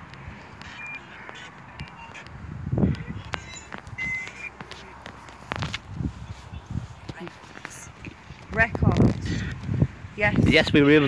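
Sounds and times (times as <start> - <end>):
footsteps on pavement: 0.0 - 9.8.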